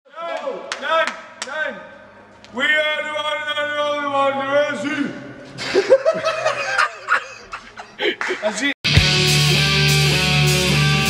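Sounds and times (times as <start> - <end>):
men laughing: 5.6 - 8.6.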